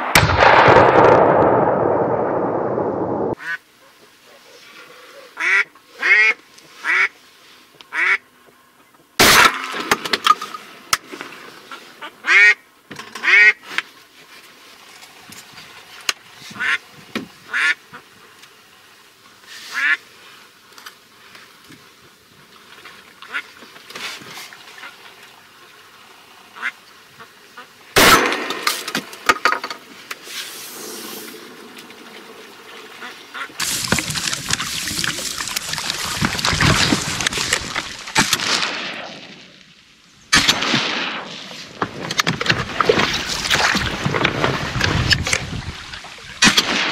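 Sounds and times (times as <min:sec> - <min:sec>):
loud shotgun shot: 0:00.0 - 0:03.4, 0:09.2 - 0:10.0, 0:28.0 - 0:28.9, 0:38.2 - 0:39.4, 0:40.3 - 0:41.6, 0:46.4 - 0:46.9
steady rushing noise: 0:00.0 - 0:03.4
duck quacking: 0:03.4 - 0:03.6, 0:05.3 - 0:07.1, 0:07.9 - 0:08.2, 0:12.0 - 0:12.6, 0:13.2 - 0:13.6, 0:16.5 - 0:16.8, 0:17.5 - 0:18.0, 0:19.7 - 0:20.0, 0:26.6 - 0:27.8, 0:33.0 - 0:33.6.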